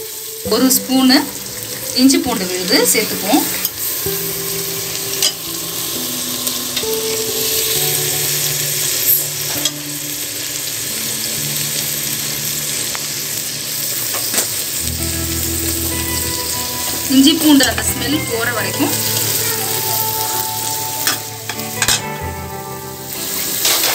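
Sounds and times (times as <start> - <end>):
food sizzling in hot oil: 0.0 - 23.9
slow background tune: 0.0 - 23.9.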